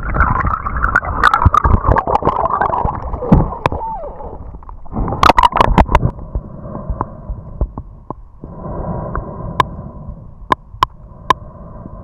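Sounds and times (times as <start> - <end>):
muffled underwater rumble: 0.0 - 12.0.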